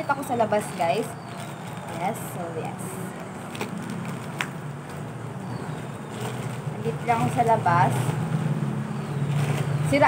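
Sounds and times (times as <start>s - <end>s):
low hum of traffic: 0.0s - 10.0s.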